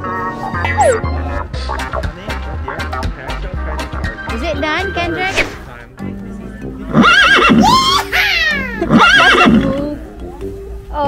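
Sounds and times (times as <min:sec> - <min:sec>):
horse whinnying: 0:06.9 - 0:09.8.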